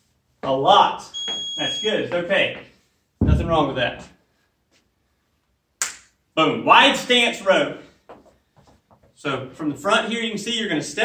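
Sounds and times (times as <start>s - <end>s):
hand snap: 5.8s - 6.2s.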